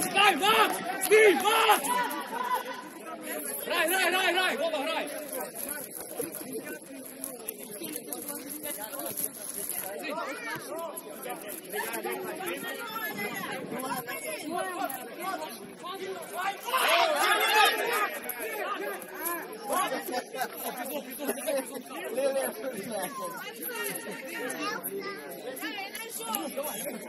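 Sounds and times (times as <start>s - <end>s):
people shouting: 0.0s - 3.1s, 16.0s - 18.9s
voices talking and calling out: 0.0s - 27.0s.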